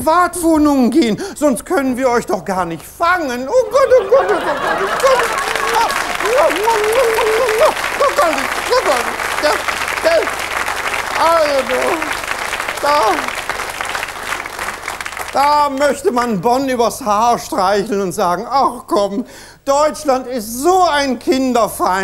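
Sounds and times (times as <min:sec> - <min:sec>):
man laughing: 0:03.5 - 0:10.3
audience applauding: 0:03.6 - 0:16.0.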